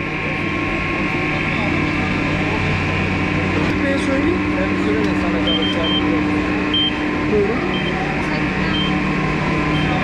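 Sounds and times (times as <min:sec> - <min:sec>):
machinery hum with high whine: 0:00.0 - 0:10.0.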